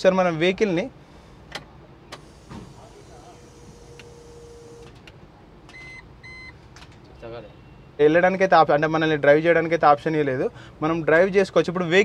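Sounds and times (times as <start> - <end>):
short electronic beeps: 5.7 - 6.6.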